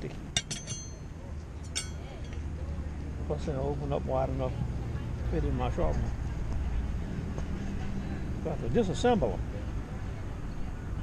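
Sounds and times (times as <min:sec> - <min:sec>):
metal blades clinking: 0:00.4 - 0:01.0, 0:01.7 - 0:02.4.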